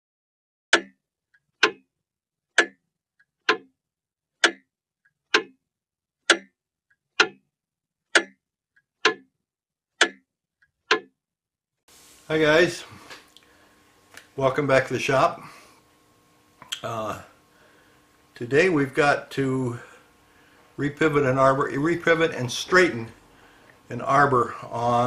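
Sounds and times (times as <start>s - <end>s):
faint clock click: 0.7s - 1.0s, 1.6s - 1.8s, 2.5s - 2.8s, 3.5s - 3.7s, 4.4s - 4.7s, 5.3s - 5.6s, 6.3s - 6.5s, 7.2s - 7.4s, 8.1s - 8.4s, 9.0s - 9.3s, 10.0s - 10.2s, 10.9s - 11.1s
mechanical clock ticking: 0.7s - 1.9s, 2.5s - 3.8s, 4.4s - 5.6s, 6.2s - 7.5s, 8.1s - 11.2s.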